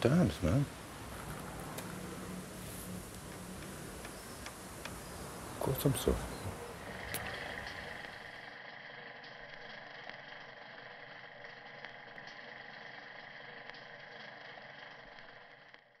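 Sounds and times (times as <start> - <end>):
faint background hiss: 0.0 - 8.0.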